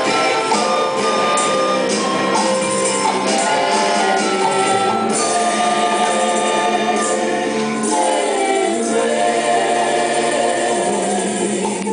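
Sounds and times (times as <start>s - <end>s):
choir singing in harmony: 0.0s - 11.9s
drums: 0.0s - 11.9s
keyboard: 0.0s - 11.9s.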